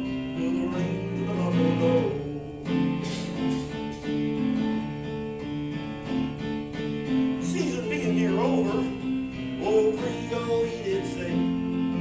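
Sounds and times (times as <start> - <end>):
person singing: 0.0 - 3.6, 7.4 - 12.0
held keyboard chords: 0.0 - 12.0.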